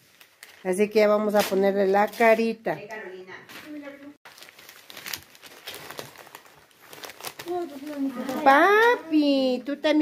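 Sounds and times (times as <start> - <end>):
newspaper crumpling and rustling: 0.0 - 2.5, 3.5 - 9.5.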